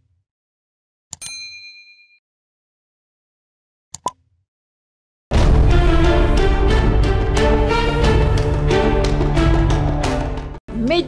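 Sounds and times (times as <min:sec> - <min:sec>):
bright bell ding: 0:01.2 - 0:02.2.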